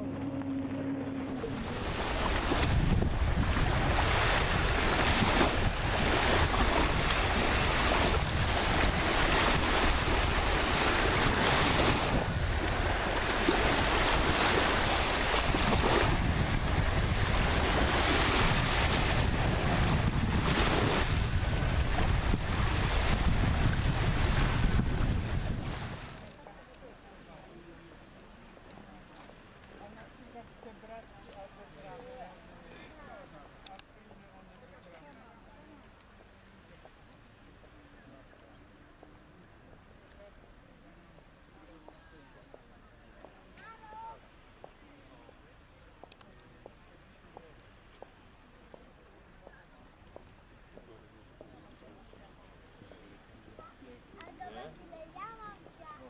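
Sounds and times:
wind buffeting microphone: 0:00.0 - 0:26.2
sea surf: 0:00.0 - 0:26.4.

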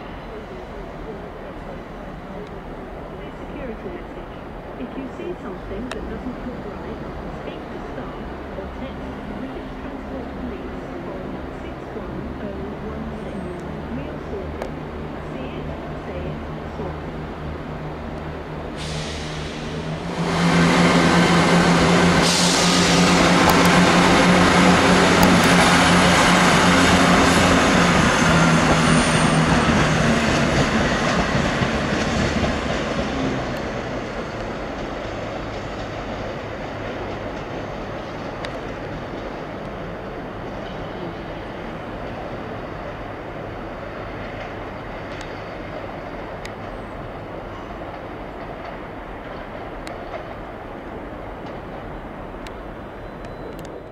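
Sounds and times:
distant train: 0:00.0 - 0:53.9
train hum: 0:00.0 - 0:53.9
train wheels rumbling on rail: 0:00.0 - 0:53.9.

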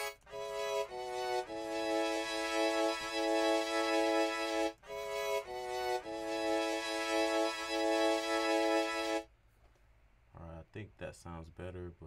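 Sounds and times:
orchestral strings sustained chords: 0:00.3 - 0:09.3.

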